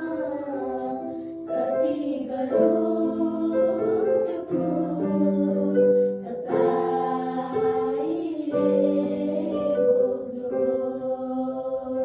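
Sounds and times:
children singing a hymn: 0.0s - 12.0s.

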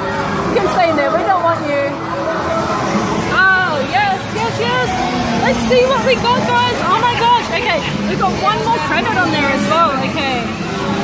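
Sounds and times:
arcade machine noise: 0.0s - 11.0s
crowd chatter: 0.0s - 11.0s.

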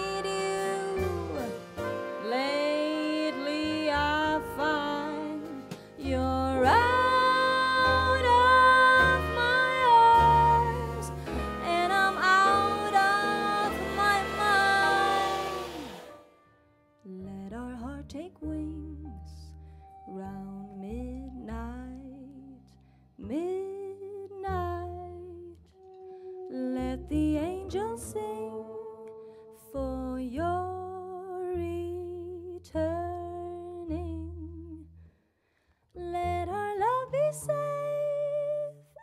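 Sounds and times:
double bass notes: 0.0s - 16.2s, 17.0s - 35.1s, 36.0s - 38.9s
jazz band chord on piano and bass: 0.0s - 16.2s
woman singing long notes: 2.2s - 16.1s.

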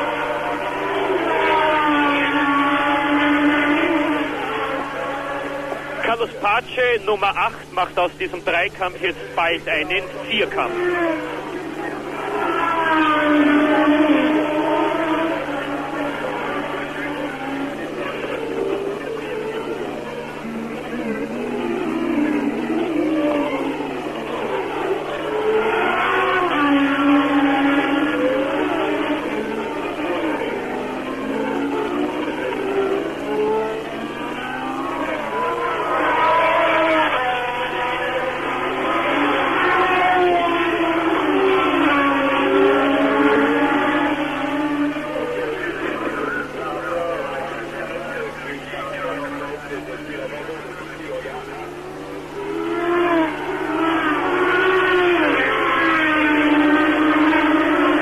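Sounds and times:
muffled racing car engines: 0.0s - 58.0s.

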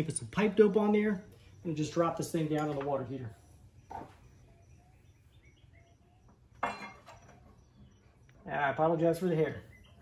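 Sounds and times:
metal rod clinking and squeaking: 6.6s - 7.6s.

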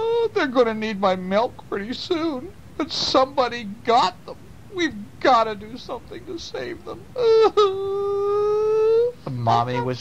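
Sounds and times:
child wailing cry: 7.2s - 9.1s, 9.7s - 10.0s.

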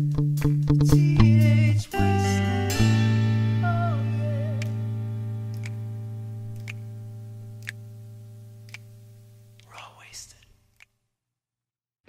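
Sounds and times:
sustained low rock chord: 0.0s - 9.6s
person whispering: 9.6s - 10.6s.

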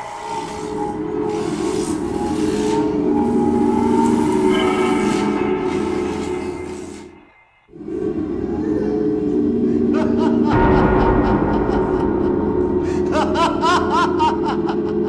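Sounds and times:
droning horror film score: 0.0s - 15.0s.

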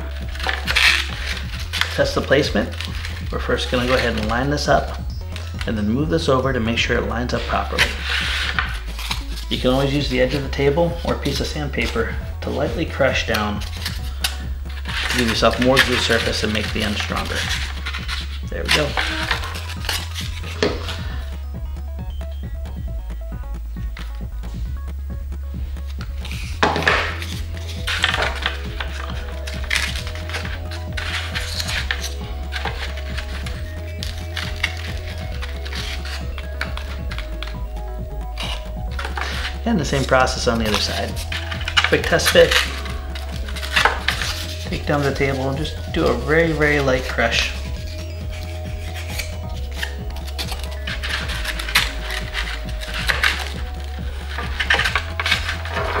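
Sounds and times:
foam board scraping on wood: 0.0s - 21.3s, 26.2s - 37.6s, 38.2s - 56.0s
foam pieces rubbing together: 0.0s - 21.5s, 25.8s - 56.0s
background music: 0.0s - 56.0s
foam board clicks and taps: 26.3s - 33.2s.

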